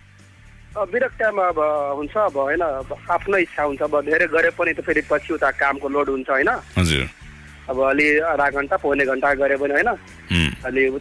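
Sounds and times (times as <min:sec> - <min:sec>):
radio host talking: 0:06.8 - 0:07.1, 0:10.3 - 0:10.6.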